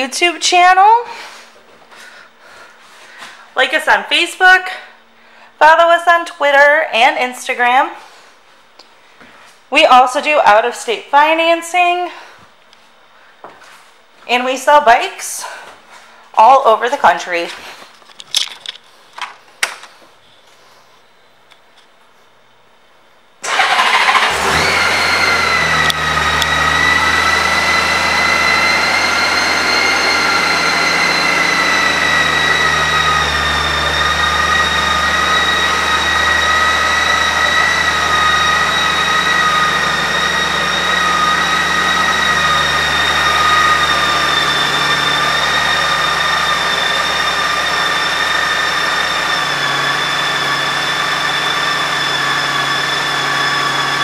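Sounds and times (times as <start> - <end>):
motorcycle engine starting and idling: 23.4 - 54.0
high whine: 24.4 - 53.2.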